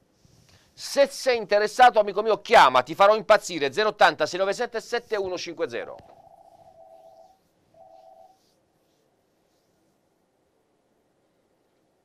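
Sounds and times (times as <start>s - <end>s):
faint electronic tone: 6.0s - 8.6s.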